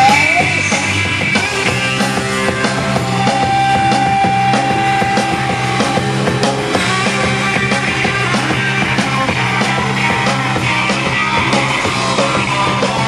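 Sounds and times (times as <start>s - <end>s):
drum kit steady beat: 0.0s - 13.0s
electric guitars: 0.0s - 13.0s.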